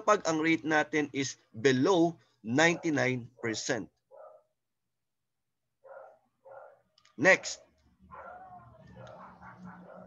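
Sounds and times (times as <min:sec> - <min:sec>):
dog barking faintly: 0:02.6 - 0:04.6, 0:05.8 - 0:10.0.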